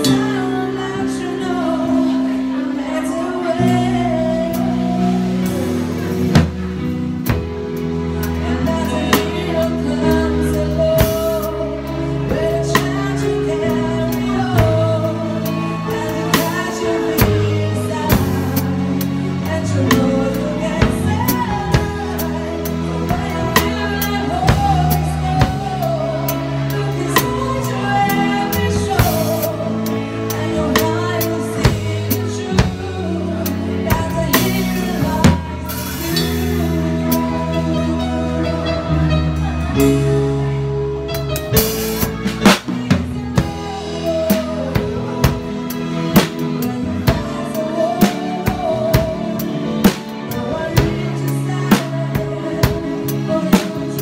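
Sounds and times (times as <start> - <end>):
recorded song with singing: 0.0 - 40.6, 42.2 - 54.0
bass notes and chords: 0.0 - 54.0
drum kit: 3.5 - 54.0.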